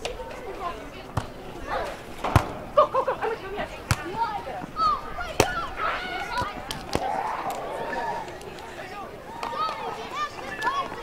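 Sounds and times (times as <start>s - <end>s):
players shouting: 2.7s - 11.0s
hands slapping volleyball: 3.9s - 4.1s.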